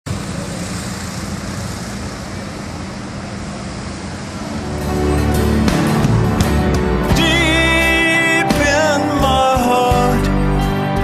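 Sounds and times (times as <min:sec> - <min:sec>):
street traffic noise: 0:00.0 - 0:11.0
music with strummed strokes: 0:04.6 - 0:11.0.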